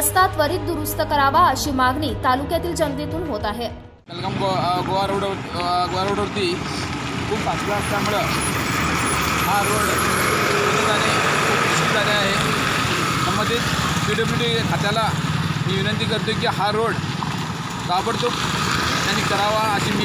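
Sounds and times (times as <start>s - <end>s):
man talking: 4.1s - 8.4s, 9.4s - 12.5s, 13.2s - 17.0s, 17.9s - 18.4s, 19.1s - 20.0s
heavy truck driving past: 4.1s - 20.0s.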